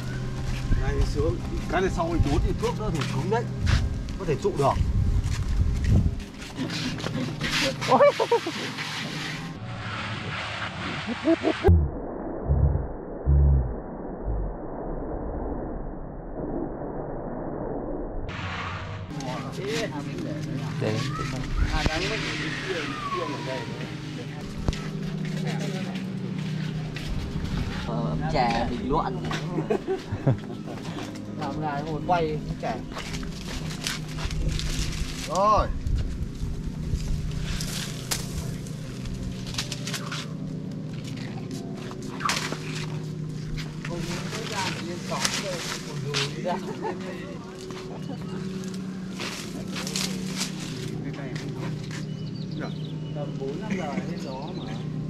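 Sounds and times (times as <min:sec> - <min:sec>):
wind rumbling on microphone: 0:03.5 - 0:06.4, 0:26.9 - 0:27.9, 0:34.1 - 0:39.2
leaves and grass rustling: 0:32.9 - 0:46.7, 0:48.5 - 0:52.0.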